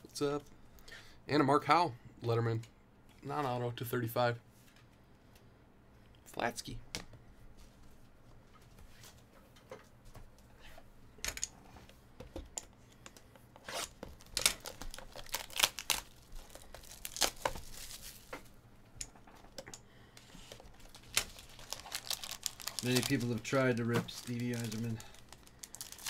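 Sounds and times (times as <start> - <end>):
plastic wrap ripping and crinkling: 13.6 - 18.4, 20.4 - 26.0.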